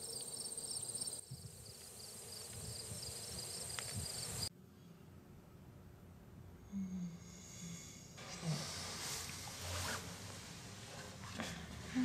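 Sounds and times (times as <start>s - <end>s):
crickets chirping: 0.0s - 4.5s.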